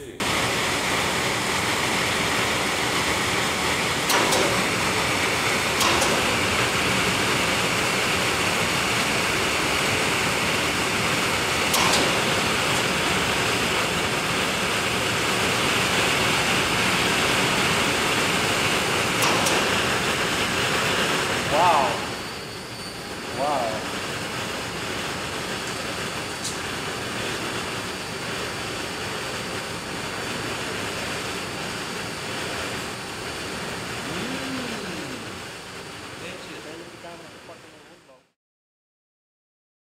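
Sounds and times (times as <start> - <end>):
fan rushing air: 0.0 - 38.2.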